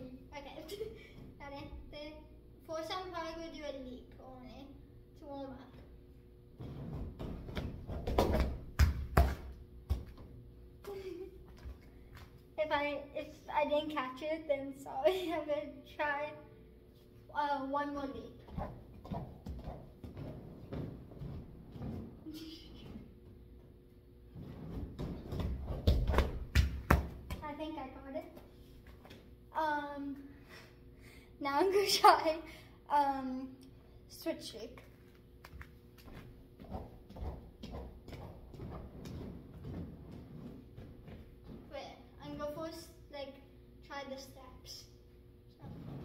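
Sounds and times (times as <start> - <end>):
bare feet on gym mats: 18.4 - 23.5, 24.3 - 27.6, 34.8 - 42.3
girl's high voice: 22.3 - 23.0, 31.4 - 33.6.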